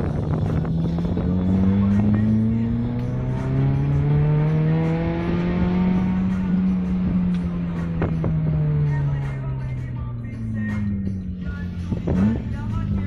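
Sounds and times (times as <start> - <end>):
car engine accelerating: 0.0 - 13.0.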